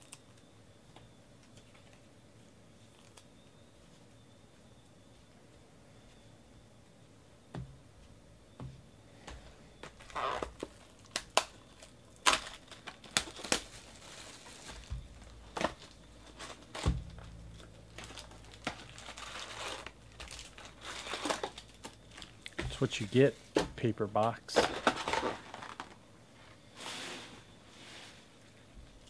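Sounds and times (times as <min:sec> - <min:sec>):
foil packs handled: 0:09.8 - 0:26.0
plastic shrink-wrap crackling: 0:10.0 - 0:23.4, 0:24.6 - 0:26.0.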